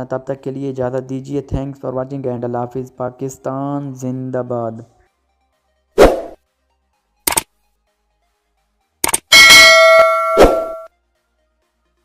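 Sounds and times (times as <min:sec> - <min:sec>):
mouse click: 0:07.3 - 0:07.5, 0:09.0 - 0:09.3
bright bell ding: 0:09.3 - 0:10.9.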